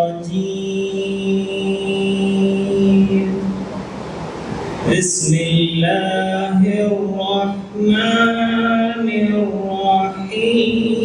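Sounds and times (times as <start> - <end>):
man chanting into a microphone: 0.0 - 3.6, 4.9 - 11.0.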